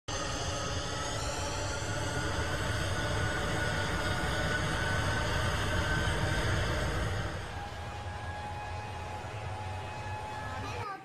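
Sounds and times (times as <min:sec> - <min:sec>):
jet engines whining: 0:00.0 - 0:11.0.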